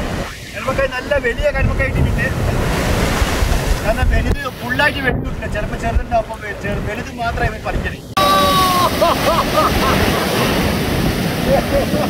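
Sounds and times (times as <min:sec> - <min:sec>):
surf breaking on rocks: 0:00.0 - 0:05.5, 0:08.2 - 0:12.0
wind buffeting microphone: 0:00.0 - 0:12.0.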